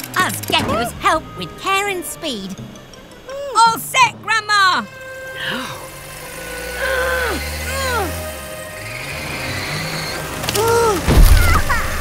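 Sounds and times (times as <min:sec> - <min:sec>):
background music: 0:00.0 - 0:12.0
cartoon truck engine straining: 0:00.0 - 0:12.0
engine groans: 0:00.0 - 0:12.0.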